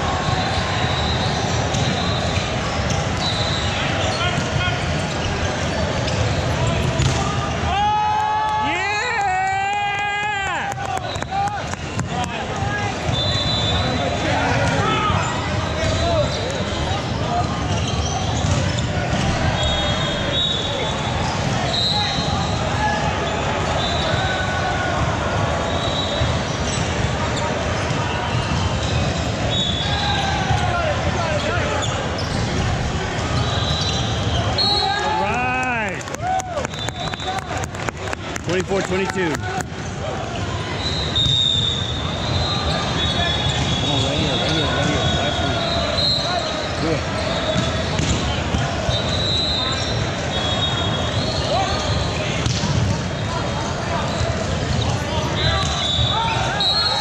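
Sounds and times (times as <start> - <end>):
many voices: 0.0 - 57.0
volleyballs bouncing and hit: 4.3 - 7.8, 10.6 - 13.2, 18.3 - 19.5, 47.5 - 48.8, 52.3 - 53.2
sneakers squeaking on hardwood: 31.4 - 34.7, 40.3 - 50.1.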